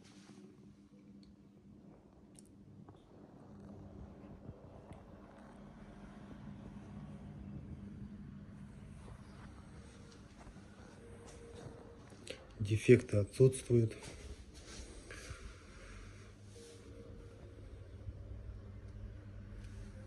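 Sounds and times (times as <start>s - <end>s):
low steady hum: 0.0s - 20.0s
faint rustling: 13.9s - 17.8s.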